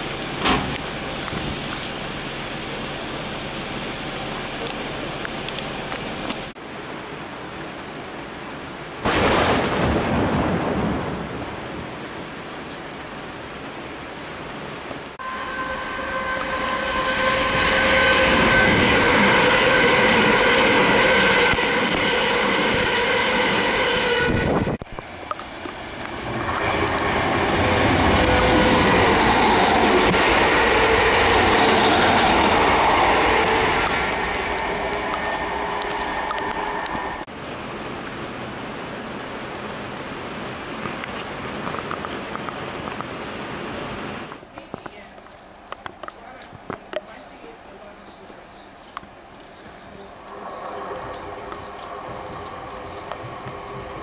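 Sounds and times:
heavy rain falling: 0.0 - 54.0
electric train passing: 15.2 - 37.3, 50.3 - 54.0.

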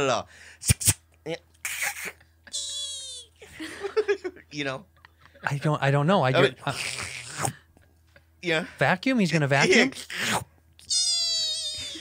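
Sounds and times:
man's falsetto squeal: 1.7 - 3.3, 10.1 - 12.0.

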